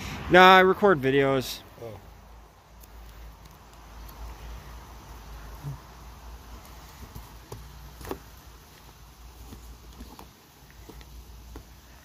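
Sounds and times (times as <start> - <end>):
comic books tapping against stack: 7.0 - 8.3.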